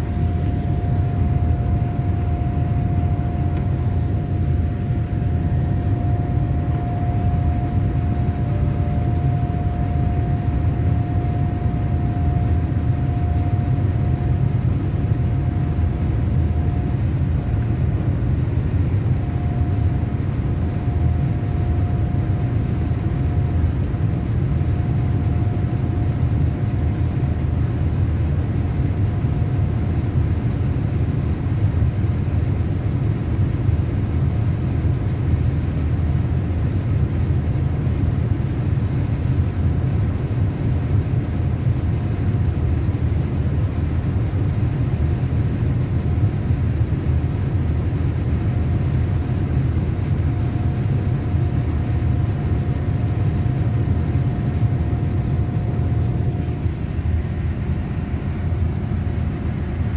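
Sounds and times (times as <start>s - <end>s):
engines and airflow rumble: 0.0s - 59.9s.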